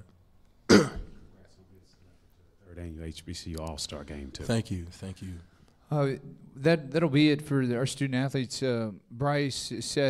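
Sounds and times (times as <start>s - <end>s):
person clearing throat: 0.7s - 1.3s.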